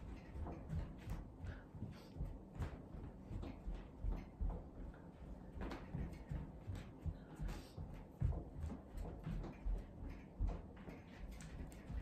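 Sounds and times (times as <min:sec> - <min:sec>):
running footsteps on floor: 0:00.0 - 0:12.0.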